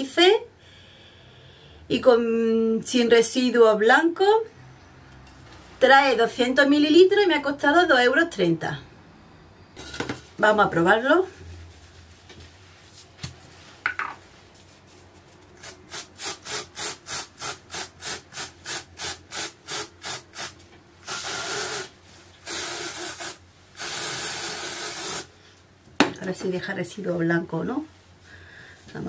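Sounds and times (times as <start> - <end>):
aerosol spray hissing: 15.6 - 25.3.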